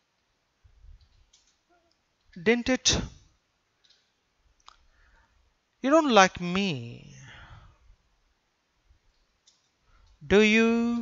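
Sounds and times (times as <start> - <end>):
computer keyboard keystrokes: 1.0 - 1.6, 9.1 - 10.2.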